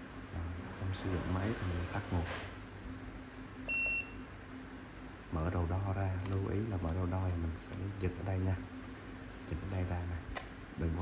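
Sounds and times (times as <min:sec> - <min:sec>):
short electronic beep: 0:03.7 - 0:04.2.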